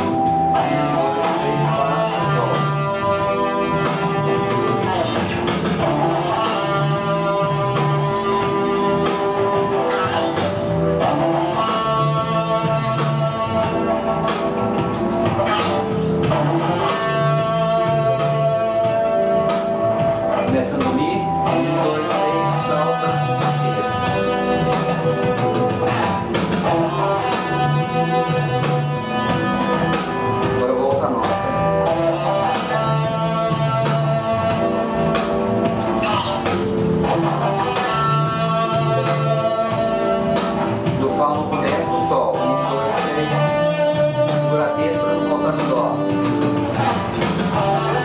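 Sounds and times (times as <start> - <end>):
accompaniment with repeating low figure: 0.0 - 48.0
electric guitar melody: 0.0 - 48.0.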